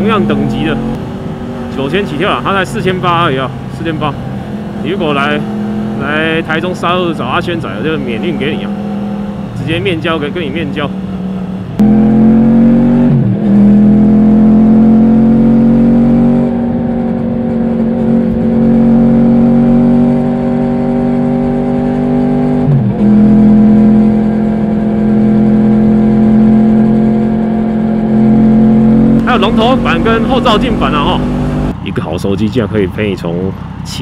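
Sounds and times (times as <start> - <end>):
motorcycle engine accelerating: 0.0 - 31.8.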